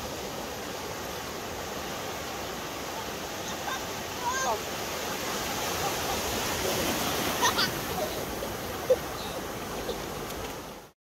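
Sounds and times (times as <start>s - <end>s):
surf breaking and wave wash: 0.0s - 11.0s.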